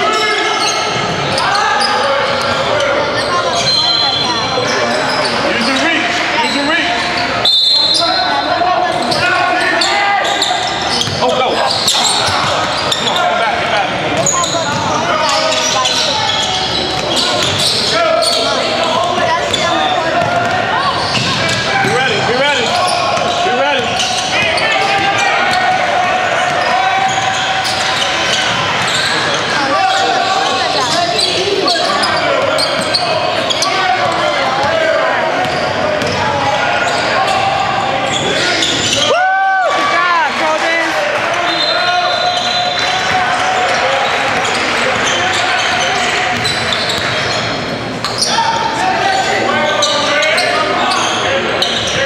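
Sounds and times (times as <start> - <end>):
sneaker squeaks: 0.0 - 39.2, 41.2 - 52.0
indistinct voices in gym: 0.0 - 52.0.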